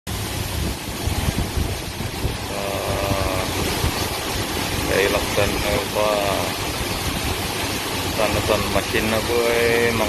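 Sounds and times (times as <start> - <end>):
grain machinery hissing: 2.2 - 10.0.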